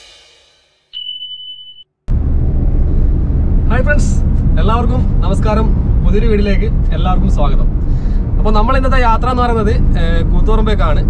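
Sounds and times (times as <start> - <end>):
high beep: 1.0 - 1.8
low rumble inside moving car: 2.1 - 11.0
man talking: 8.4 - 11.0.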